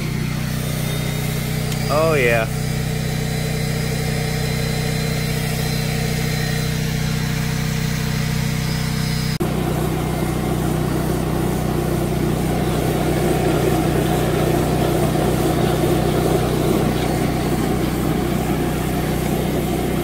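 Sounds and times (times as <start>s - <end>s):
carpet extractor vacuum running: 0.0s - 20.0s
rough machine noise: 0.0s - 20.0s.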